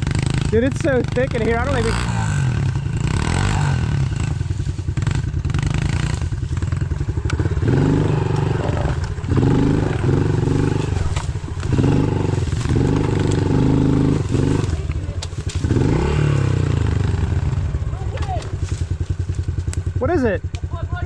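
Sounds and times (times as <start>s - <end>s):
small motorcycle engine revving: 0.0s - 20.4s.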